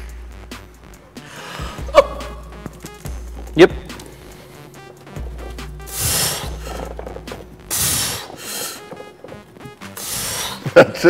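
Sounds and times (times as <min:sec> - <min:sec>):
background music with bass: 0:00.0 - 0:11.0
person breathing forcefully: 0:01.1 - 0:02.0, 0:05.8 - 0:07.0, 0:07.6 - 0:08.9, 0:09.9 - 0:10.7.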